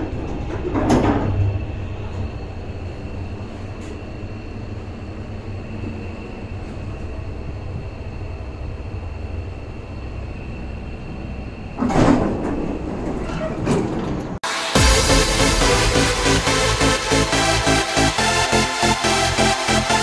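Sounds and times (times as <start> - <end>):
lift car rumbling: 0.0 - 14.6
lift doors sliding open: 11.4 - 14.4.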